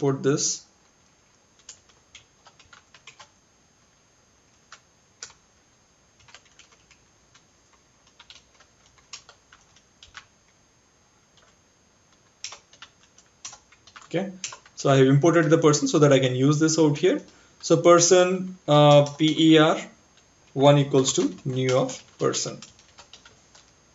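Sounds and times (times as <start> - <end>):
faint keyboard typing: 0.8 - 3.4, 4.5 - 5.4, 6.2 - 10.6, 11.3 - 23.9.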